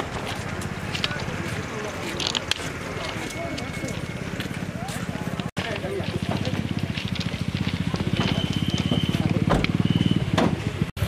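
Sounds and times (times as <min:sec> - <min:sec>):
people talking in background: 0:00.0 - 0:10.9.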